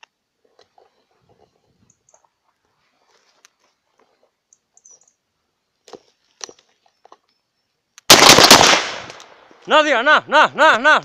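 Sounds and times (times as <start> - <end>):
shotgun shots with echo: 8.1 - 9.3.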